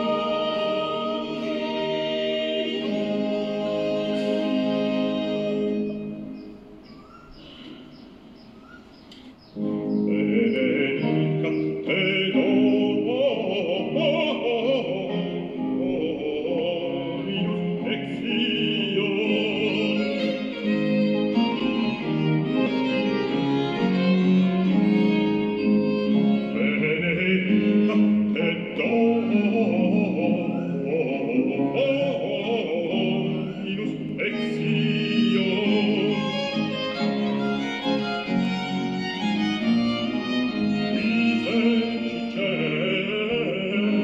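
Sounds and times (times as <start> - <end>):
male opera singer: 0.0 - 6.3, 10.0 - 38.8, 39.4 - 44.0
violin melody: 0.0 - 6.9, 9.6 - 44.0
bowed string ensemble: 0.0 - 8.0, 18.2 - 44.0.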